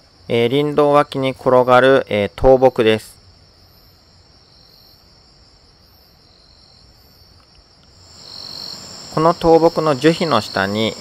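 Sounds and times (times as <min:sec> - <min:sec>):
crickets chorus: 0:00.0 - 0:11.0
higher insect call: 0:00.0 - 0:11.0
soft hiss: 0:00.0 - 0:11.0.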